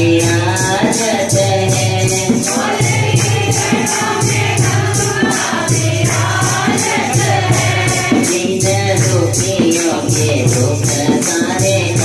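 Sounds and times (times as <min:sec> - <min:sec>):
devotional singing through microphone: 0:00.0 - 0:12.0
jingling percussion: 0:00.0 - 0:12.0
group voices singing: 0:01.7 - 0:12.0.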